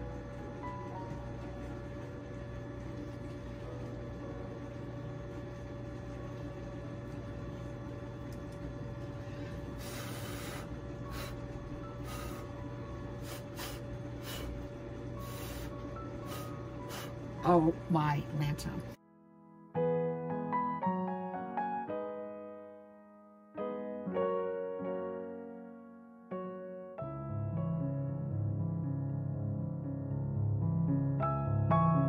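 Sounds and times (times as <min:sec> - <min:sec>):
steady low hum: 0:00.0 - 0:19.0
puffs of breath blowing: 0:09.2 - 0:12.6, 0:13.2 - 0:14.6, 0:15.2 - 0:17.2.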